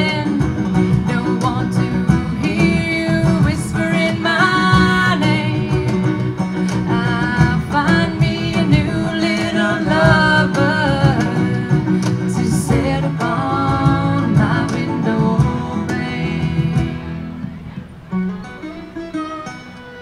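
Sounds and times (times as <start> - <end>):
woman singing: 0.0 - 17.2
fingerpicked banjo: 0.0 - 20.0
other plucked strings: 0.0 - 20.0.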